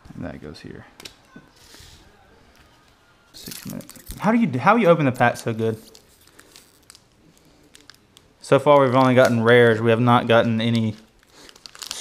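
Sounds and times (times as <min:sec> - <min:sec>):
foil pack crinkling: 0:03.4 - 0:12.0.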